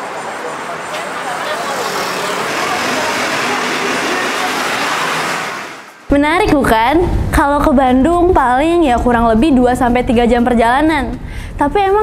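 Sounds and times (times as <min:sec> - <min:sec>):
faint voices: 0:00.0 - 0:05.7
bus passing: 0:00.0 - 0:11.6
city street traffic: 0:00.0 - 0:12.0.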